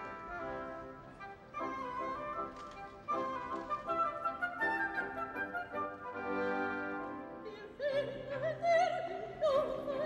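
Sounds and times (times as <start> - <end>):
chamber orchestra playing: 0.0 - 7.6
woodwinds playing melody: 0.0 - 8.5.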